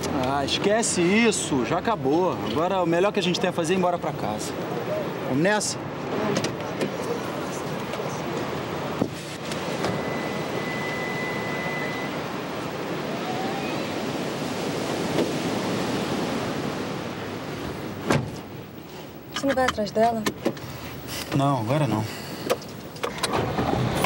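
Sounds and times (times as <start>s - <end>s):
surf waves rushing: 0.0s - 19.3s
wind: 0.0s - 24.0s.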